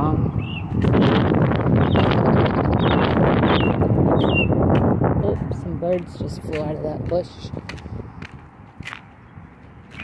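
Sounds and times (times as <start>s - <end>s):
wind buffeting microphone: 0.0s - 10.0s
bird chirps: 1.8s - 4.5s.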